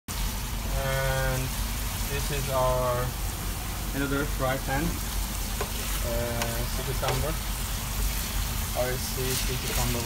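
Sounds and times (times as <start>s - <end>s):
food sizzling in a frying pan: 0.1s - 10.0s.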